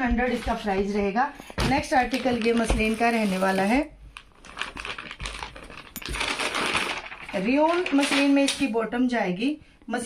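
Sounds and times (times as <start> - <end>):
plastic bag crinkling: 1.8 - 8.8.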